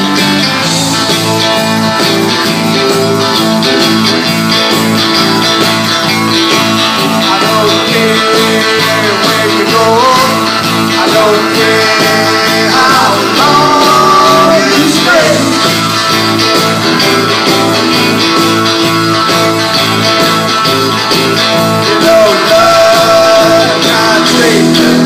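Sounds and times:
rock and roll band playing: 0.0 - 25.0.

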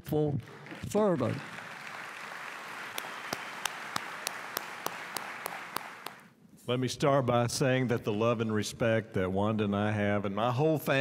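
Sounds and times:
audience applauding: 0.4 - 6.3
sharp even hand claps: 1.4 - 6.3.

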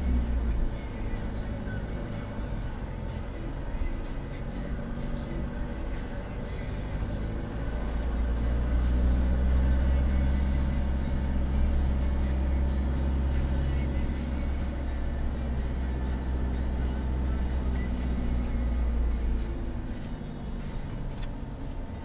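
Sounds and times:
car engine and cabin drone: 0.0 - 22.0.

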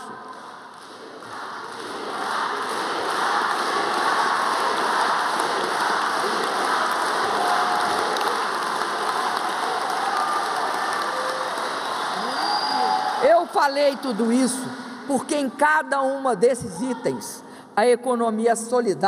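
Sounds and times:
large audience applauding: 0.0 - 14.9.

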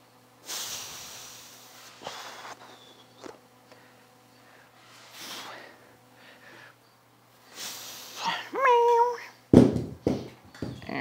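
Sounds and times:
dumbbells thudding on floor: 9.5 - 10.9.

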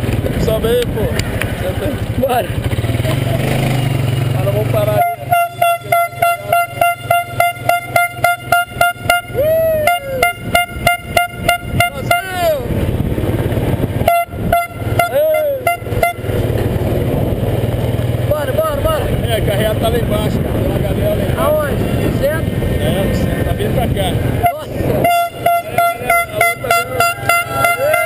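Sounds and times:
vehicle engine humming: 0.0 - 28.0
horn tooting in short blasts: 4.8 - 12.6, 14.0 - 16.4, 24.4 - 28.0.

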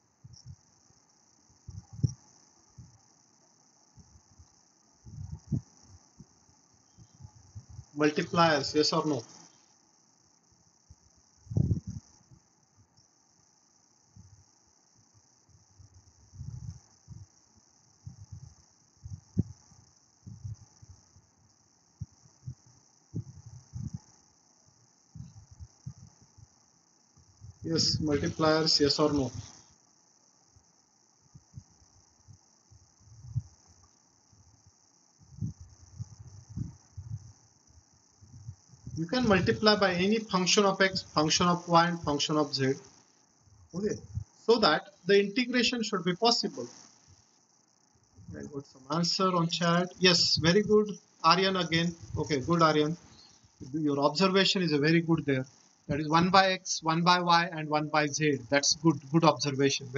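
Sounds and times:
crickets chirring: 0.0 - 59.9
high-pitched hiss: 0.0 - 59.9
muffled low thumps: 11.5 - 12.1, 16.3 - 17.3, 18.0 - 19.6, 20.2 - 20.7, 22.0 - 24.0, 35.2 - 37.3.

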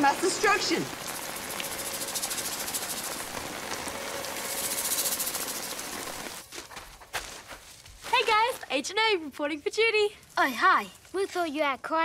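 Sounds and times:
rain pelting a tent: 0.0 - 6.6.

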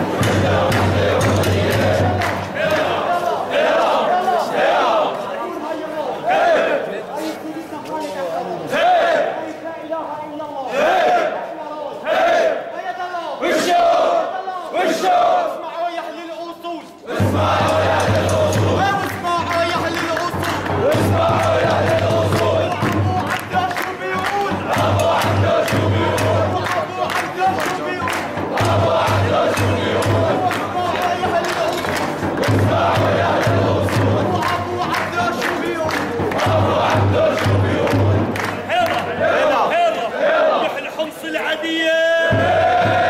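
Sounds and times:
low drum beat: 0.0 - 2.8, 17.2 - 23.7, 24.5 - 38.4, 42.3 - 43.0
rhythmic hand clapping: 0.0 - 3.9, 17.1 - 39.6
crowd of men chanting: 0.0 - 7.4, 8.4 - 9.6, 10.7 - 16.2, 17.0 - 43.0.

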